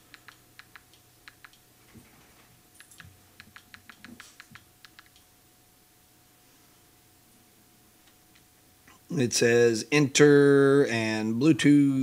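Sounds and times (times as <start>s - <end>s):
remote buttons clicking: 0.0s - 1.6s, 2.8s - 5.3s.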